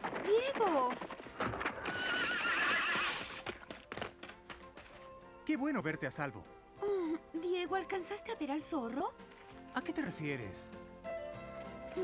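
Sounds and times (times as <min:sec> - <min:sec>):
hoofbeats: 0:00.0 - 0:05.5
horse whinnying: 0:01.4 - 0:03.7.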